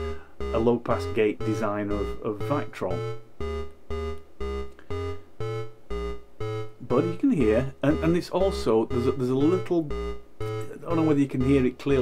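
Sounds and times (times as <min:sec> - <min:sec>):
synth repeating note sequence: 0:00.0 - 0:12.0.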